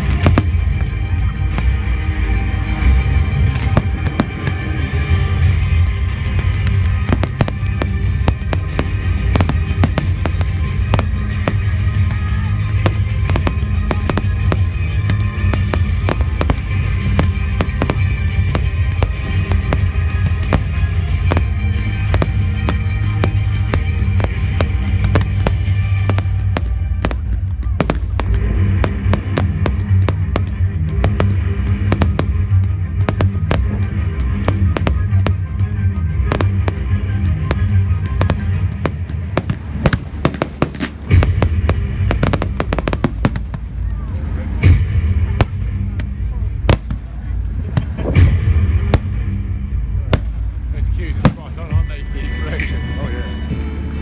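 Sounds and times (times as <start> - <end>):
firework bangs and crackles: 0.0 - 53.7
music playing: 0.0 - 54.0.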